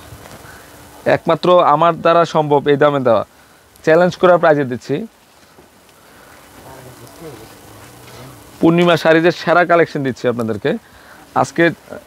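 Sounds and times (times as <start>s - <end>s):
faint background voices: 6.4s - 8.6s.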